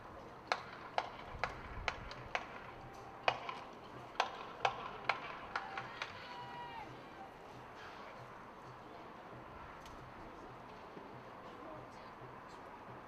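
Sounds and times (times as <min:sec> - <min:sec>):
sharp rhythmic clicks: 0:00.4 - 0:06.1.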